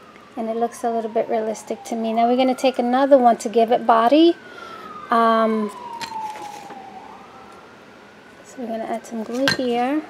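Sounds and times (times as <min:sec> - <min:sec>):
distant siren wailing: 0:00.0 - 0:10.0.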